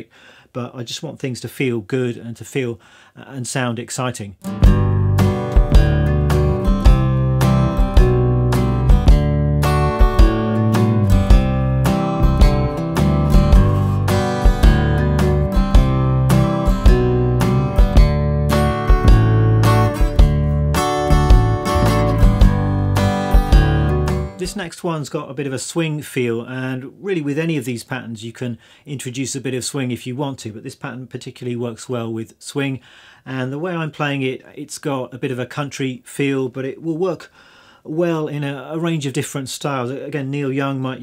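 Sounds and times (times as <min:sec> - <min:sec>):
acoustic guitar country strumming: 0:04.4 - 0:24.6.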